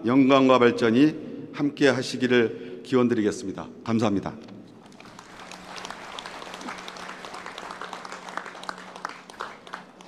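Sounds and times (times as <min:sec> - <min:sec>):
audience applause: 0:04.8 - 0:10.0.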